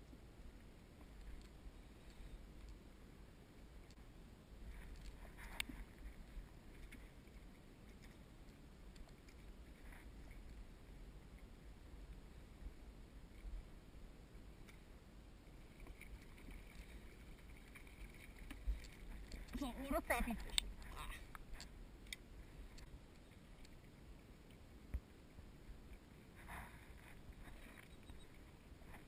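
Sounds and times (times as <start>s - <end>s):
water lapping against kayak hull: 15.5s - 21.7s.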